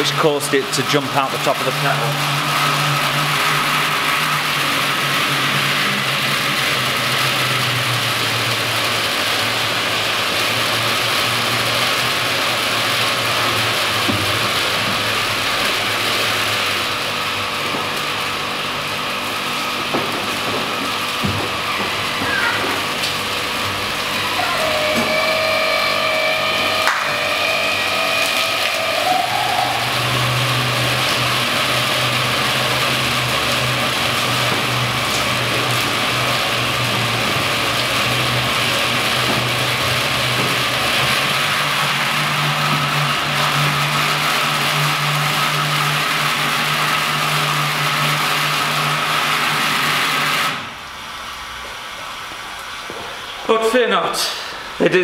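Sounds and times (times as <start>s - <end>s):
low motor hum: 0.0s - 53.4s
boiling kettle hiss and rumble: 0.0s - 55.0s.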